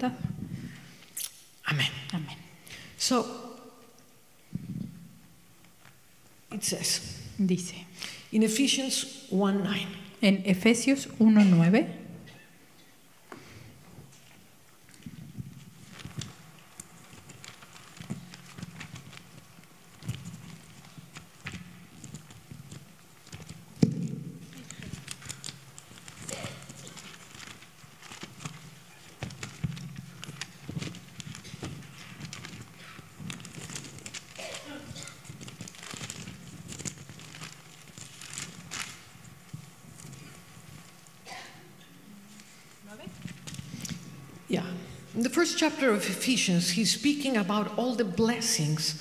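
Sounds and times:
pages rustling: 0:13.9 - 0:41.2, 0:41.8 - 0:44.5.

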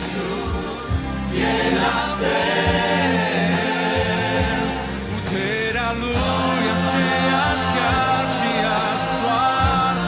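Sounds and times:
mixed choir singing in harmony: 0:00.0 - 0:10.0.

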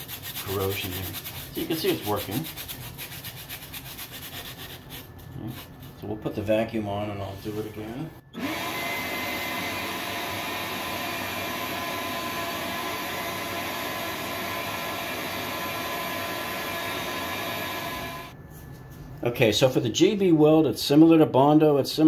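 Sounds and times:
shop vacuum running: 0:06.0 - 0:18.4.

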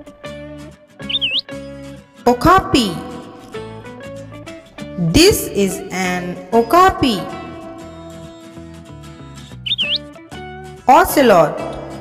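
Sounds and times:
light children's music: 0:00.0 - 0:12.0
chirping whistle sound effect: 0:01.0 - 0:01.5, 0:09.7 - 0:10.1.

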